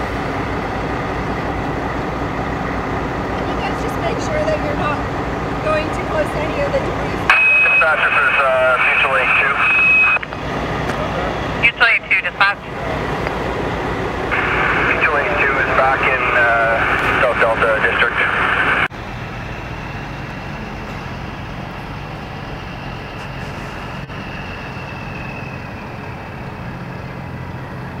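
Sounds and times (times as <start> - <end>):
idling engines hum: 0.0 - 28.0
scanner radio voice: 6.5 - 10.2, 11.6 - 12.6, 14.4 - 18.9.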